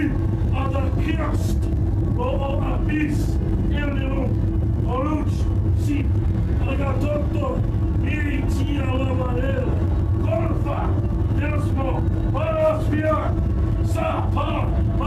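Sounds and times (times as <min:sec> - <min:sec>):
loud low rumble and hum: 0:00.0 - 0:15.0
muffled voices: 0:00.0 - 0:15.0.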